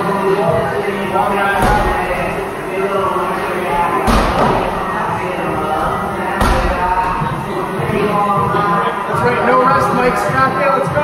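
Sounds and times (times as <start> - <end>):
voices in a large room: 0.0 - 11.0
medicine ball heavy thud: 1.5 - 2.4, 3.7 - 5.1, 5.7 - 7.4.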